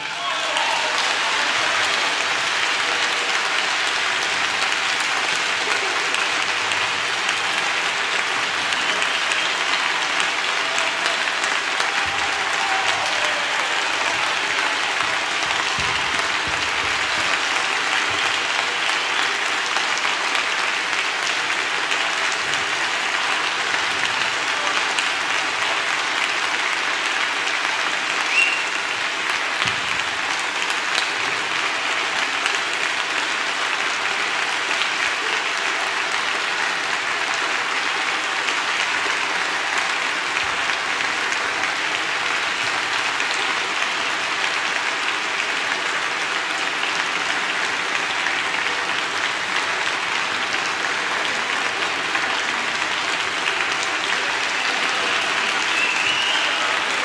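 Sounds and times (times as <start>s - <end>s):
audience applauding: 0.0s - 57.0s.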